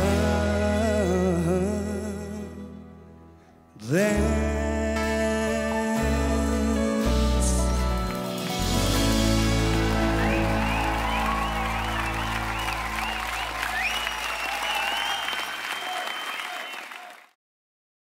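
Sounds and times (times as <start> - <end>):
acoustic guitars and fiddle chord: 7.1 - 13.9
audience applause: 8.0 - 17.4
audience cheering: 8.5 - 17.3
wavering whistles: 9.9 - 17.0.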